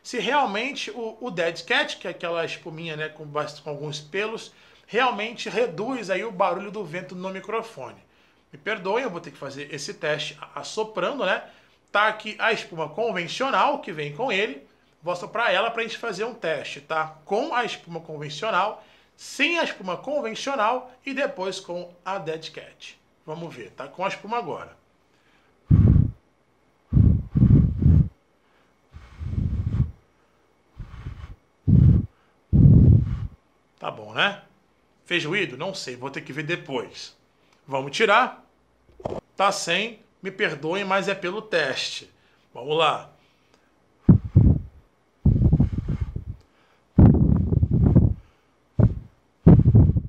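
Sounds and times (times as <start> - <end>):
breath puffs on microphone: 25.7 - 26.2, 26.9 - 30.0, 30.8 - 33.4, 43.3 - 50.0
low rumbling wind noise: 25.7 - 26.2, 26.9 - 28.2, 29.0 - 30.0, 30.8 - 33.4, 44.1 - 46.4, 47.0 - 50.0.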